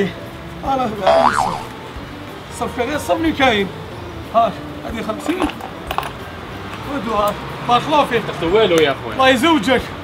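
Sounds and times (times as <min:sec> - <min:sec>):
comic boing sound effect: 0:01.1 - 0:01.7.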